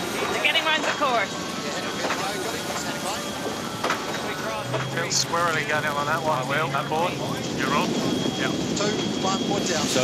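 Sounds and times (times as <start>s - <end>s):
faint indistinct voices: 0.0s - 10.0s
steady rushing noise: 0.0s - 10.0s.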